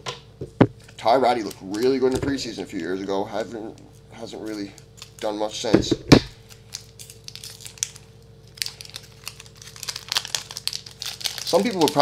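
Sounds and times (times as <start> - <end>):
plastic wrapper crinkling: 4.3 - 12.0.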